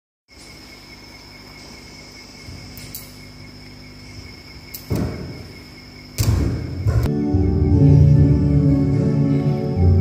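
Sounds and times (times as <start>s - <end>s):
high-pitched whine: 0.3s - 10.0s.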